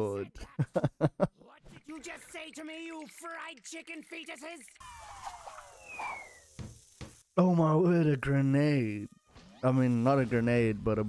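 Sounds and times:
falling bomb whistle: 4.8s - 6.6s.

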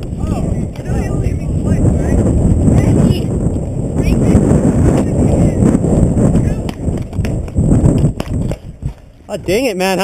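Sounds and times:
wind rumble on microphone: 0.0s - 10.0s
running footsteps: 4.8s - 10.0s.

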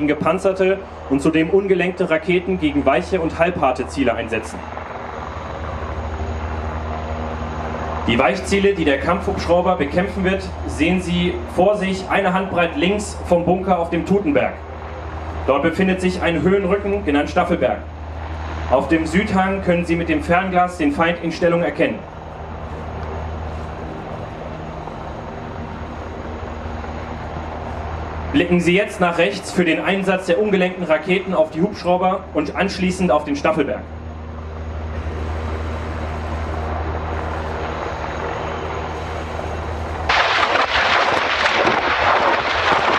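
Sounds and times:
helicopter rotors beating: 0.0s - 42.9s
helicopter turbines running: 0.0s - 42.9s.

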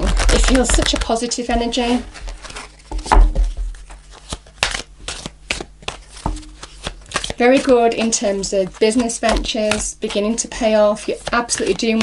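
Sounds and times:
cards shuffled by hand: 0.0s - 12.0s.

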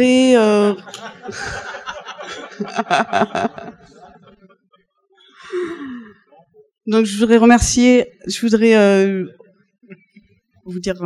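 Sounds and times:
person sighing: 5.4s - 6.2s
person speaking: 10.7s - 11.0s.

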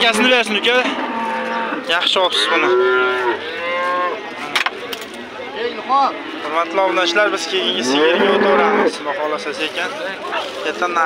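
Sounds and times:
cattle mooing: 0.0s - 4.3s, 6.2s - 9.0s.

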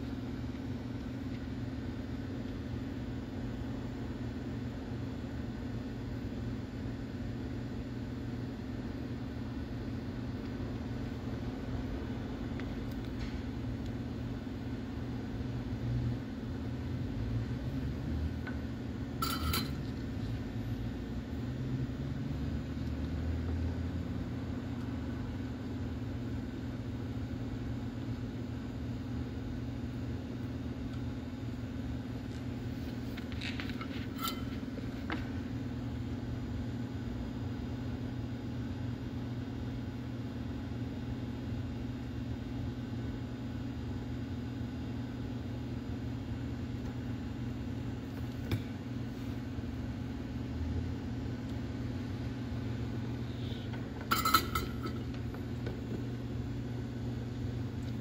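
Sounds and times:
low background hum: 0.0s - 58.0s.

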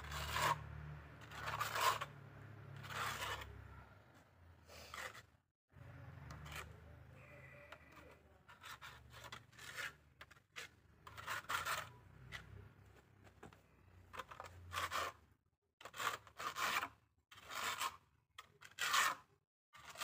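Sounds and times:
trowel scraping wet cement: 0.0s - 20.0s.

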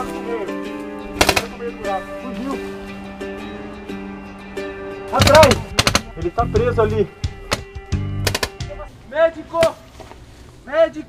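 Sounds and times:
background music: 0.0s - 9.5s
paintball marker shots: 1.2s - 1.6s, 5.2s - 6.1s, 7.5s - 8.6s.

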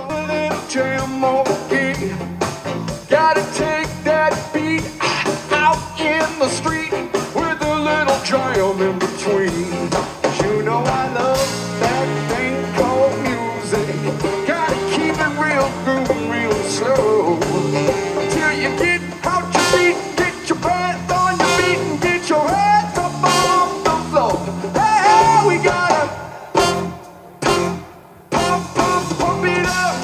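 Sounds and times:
drum kit: 0.0s - 30.0s
electric bass: 0.0s - 30.0s
electric guitar lead melody: 10.9s - 25.8s, 26.6s - 30.0s.

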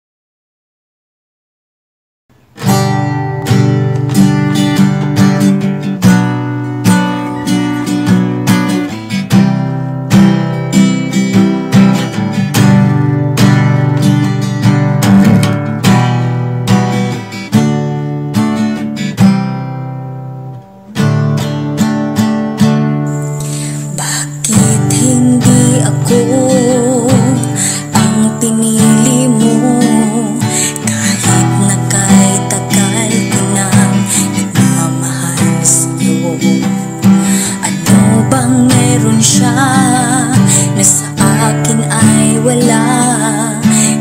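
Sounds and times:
acoustic guitar strumming chords: 2.3s - 44.0s.

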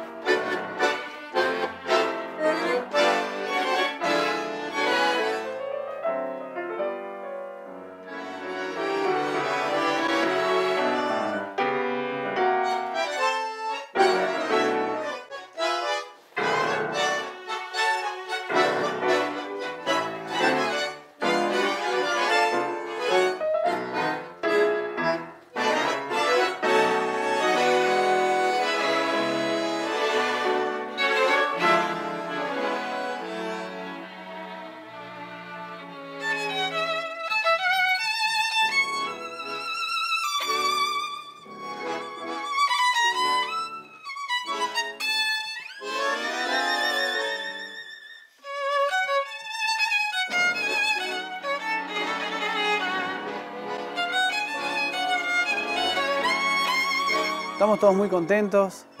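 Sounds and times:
high violin melody with vibrato: 0.0s - 6.4s, 8.0s - 59.0s
tango orchestra playing: 0.0s - 59.0s.

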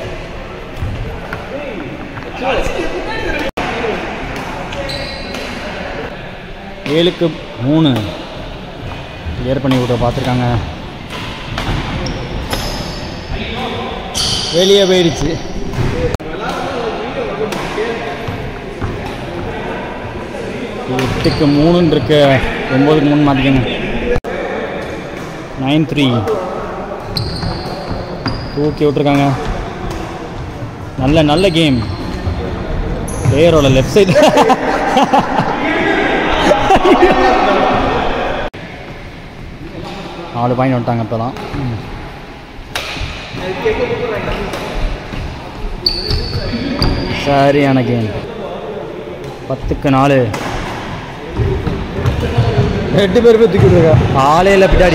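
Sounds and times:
players calling out: 31.0s - 38.5s.

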